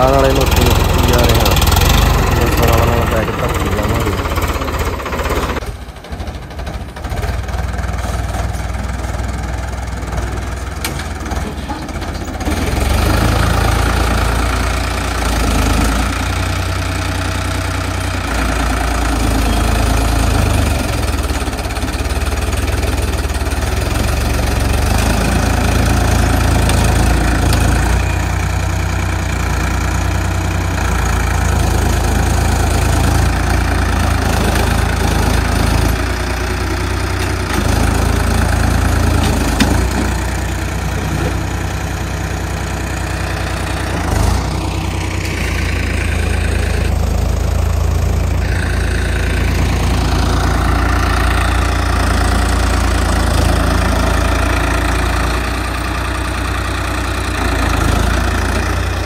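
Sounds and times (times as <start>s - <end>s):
tractor diesel engine running: 0.0s - 59.0s.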